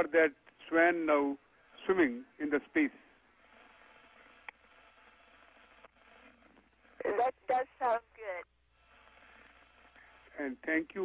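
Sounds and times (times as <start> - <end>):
faint radio hiss: 0.0 - 11.0.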